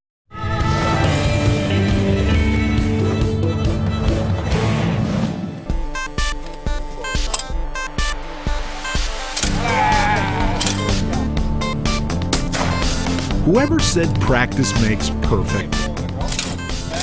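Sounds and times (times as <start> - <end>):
theme music with steady beat: 0.3 - 17.0.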